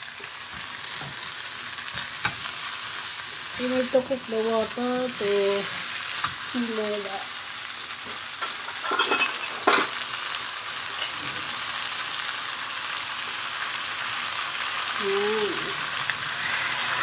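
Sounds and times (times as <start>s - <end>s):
food sizzling in a frying pan: 0.0s - 17.0s.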